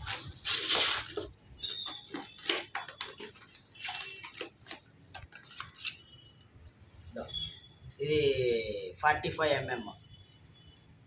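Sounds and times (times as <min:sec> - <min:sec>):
plastic packets rustling: 0:00.0 - 0:06.0.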